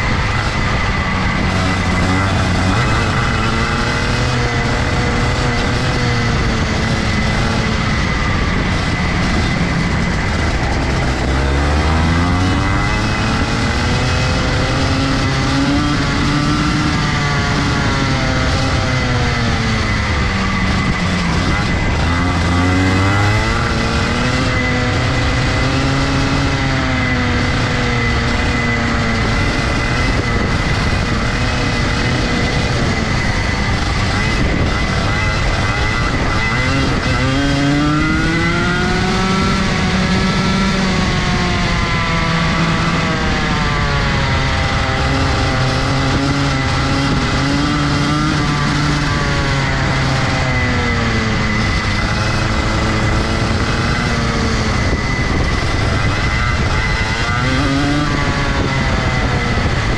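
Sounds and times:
kart engine revving: 0.0s - 59.9s.

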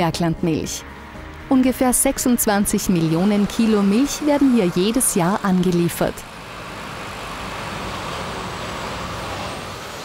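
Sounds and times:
tanker truck driving past: 0.0s - 10.0s.

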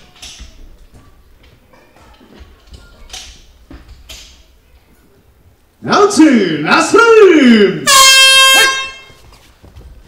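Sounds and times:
horn blast: 7.8s - 9.2s.

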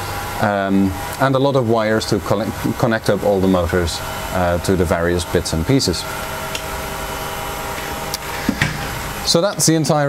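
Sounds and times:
laboratory equipment humming: 0.0s - 10.0s.

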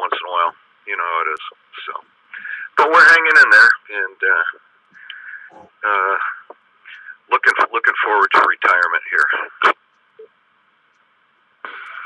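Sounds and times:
radio static hiss: 0.0s - 11.0s, 11.6s - 12.0s.

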